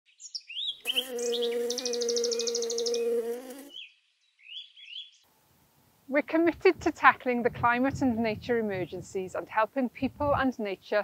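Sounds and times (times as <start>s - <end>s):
birds chirping: 0.1s - 5.2s
high bird trill: 0.2s - 5.2s
bumblebee buzzing: 0.8s - 3.8s.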